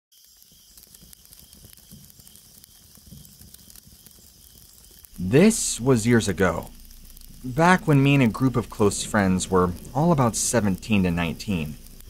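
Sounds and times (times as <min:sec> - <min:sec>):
small pops and clicks: 0:00.1 - 0:12.0
steady hiss: 0:00.2 - 0:12.0
soft low rumble: 0:05.1 - 0:12.0.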